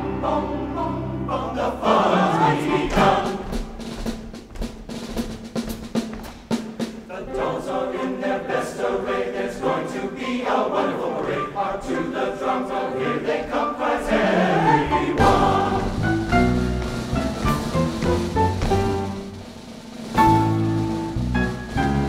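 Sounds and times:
men's chorus singing: 0.0 - 3.8, 7.1 - 16.5
musical accompaniment: 0.0 - 22.0.

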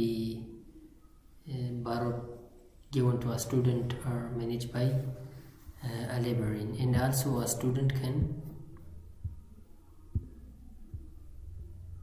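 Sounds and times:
low steady hum: 0.0 - 12.0
soft dull thumps: 10.1 - 11.2.

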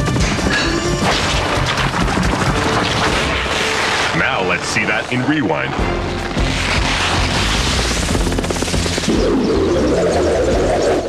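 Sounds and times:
background score music: 0.0 - 11.0
rapid crackling: 0.0 - 11.0.

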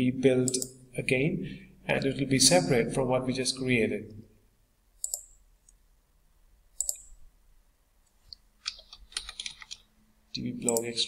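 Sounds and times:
computer mouse click: 0.5 - 0.8, 5.0 - 5.8, 6.8 - 7.2, 10.6 - 11.0
keyboard typing: 5.0 - 5.4, 6.8 - 7.2, 8.6 - 9.8.

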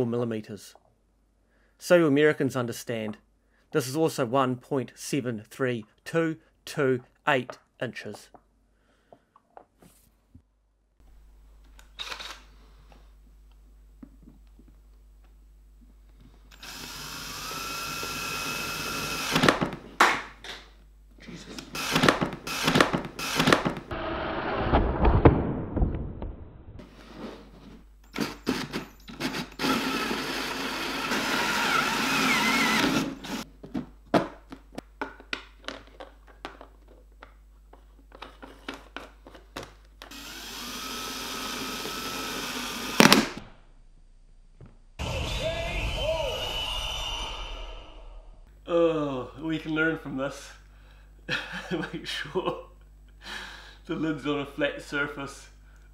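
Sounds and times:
cordless drill motor whine: 16.5 - 19.5, 28.1 - 33.4, 40.1 - 43.1.

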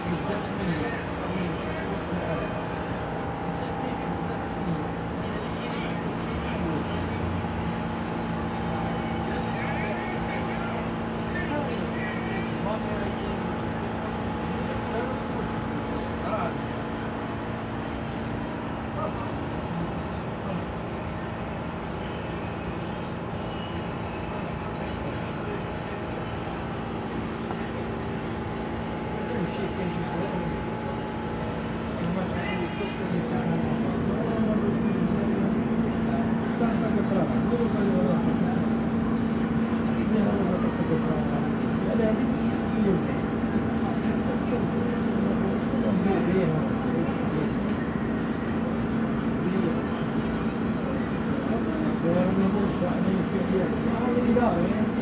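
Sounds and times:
low mechanical drone: 0.0 - 55.0
subway car ventilation hum: 0.0 - 55.0.

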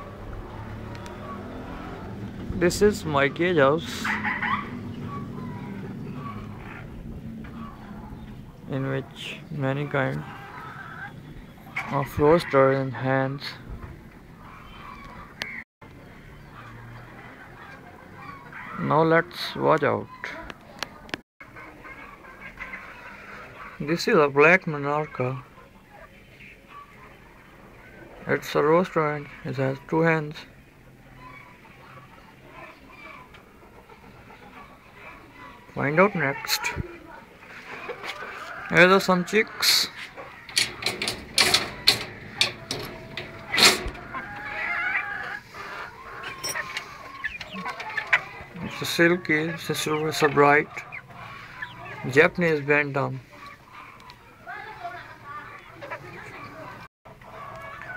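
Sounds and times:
chickens clucking faintly: 0.0 - 57.9
chicken wavering call: 39.4 - 48.4.

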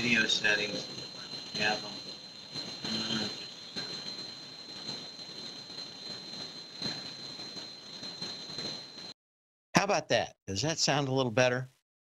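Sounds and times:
steady high-pitched whine: 0.0 - 9.2.

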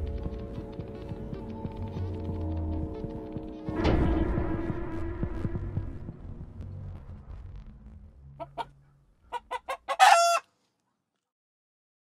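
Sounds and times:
chicken clucking: 8.4 - 10.5
loud pitched chicken call: 9.3 - 10.5.

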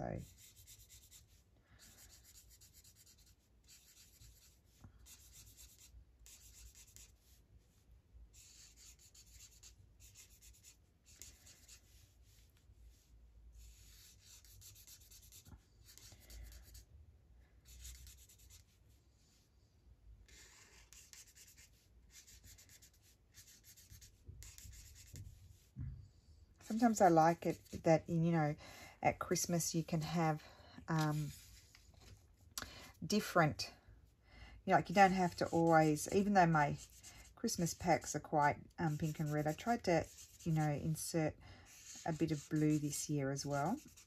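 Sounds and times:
marker scratching on paper: 0.0 - 7.4, 8.3 - 16.9, 17.6 - 18.8, 20.2 - 25.7, 26.6 - 28.5, 29.1 - 32.2, 34.7 - 44.0.

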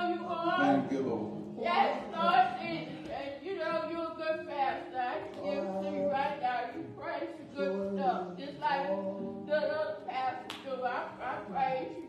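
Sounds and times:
man chanting preaching: 0.4 - 1.4, 5.4 - 6.2
sharp clap or knock: 10.5 - 10.7.

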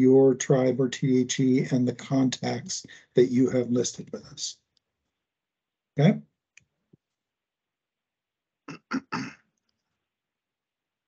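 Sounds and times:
person clearing throat: 8.7 - 9.4.

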